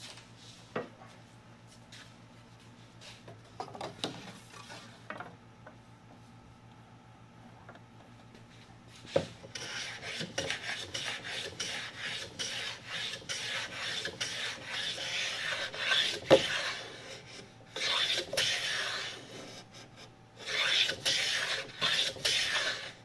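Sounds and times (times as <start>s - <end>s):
hand plane shaving wood: 9.6s - 23.0s.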